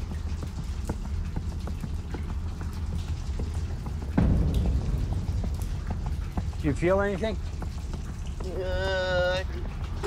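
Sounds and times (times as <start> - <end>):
low steady rumble: 0.0 - 10.0
small water drips: 0.0 - 10.0.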